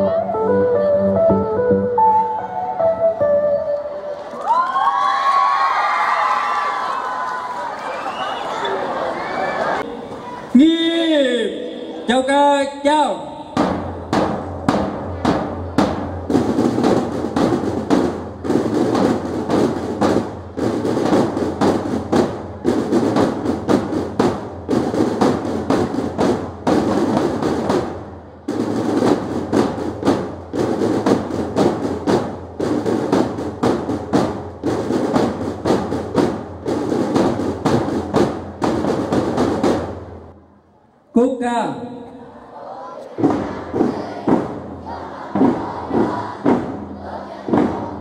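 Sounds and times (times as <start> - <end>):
snare drums marching beat: 13.2 - 40.3, 43.1 - 48.0.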